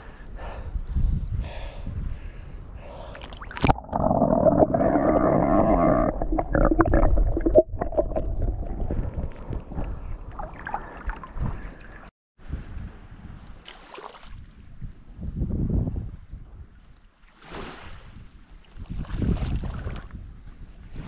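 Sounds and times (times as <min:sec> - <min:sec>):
seawater sloshing and gurgling: 0:03.2 - 0:12.1
small water splashes: 0:13.6 - 0:14.4.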